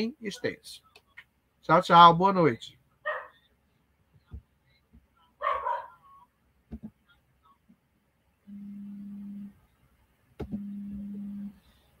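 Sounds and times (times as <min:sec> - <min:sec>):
low buzzing tones: 0:08.4 - 0:09.6, 0:10.4 - 0:11.6.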